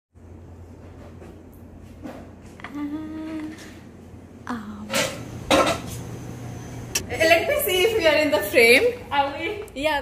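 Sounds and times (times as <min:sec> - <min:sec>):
person humming a steady note: 0:02.6 - 0:03.6.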